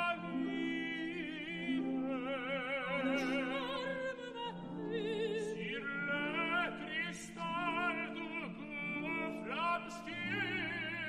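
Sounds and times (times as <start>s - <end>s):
soprano singing: 0.0s - 11.0s
tenor singing: 0.0s - 11.0s.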